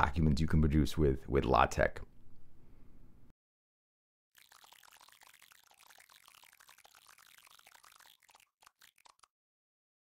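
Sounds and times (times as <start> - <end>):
crackling fizzing clicks: 4.4 - 9.4.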